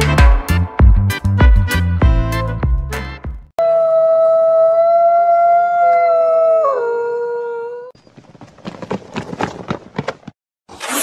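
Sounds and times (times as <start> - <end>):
wolf howling: 3.6 - 8.0
short rough noises: 10.7 - 11.0.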